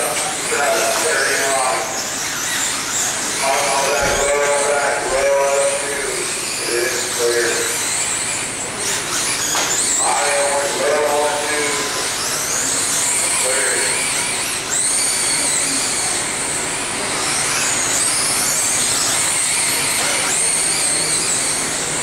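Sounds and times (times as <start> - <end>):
electric motors whining: 0.0 - 22.0.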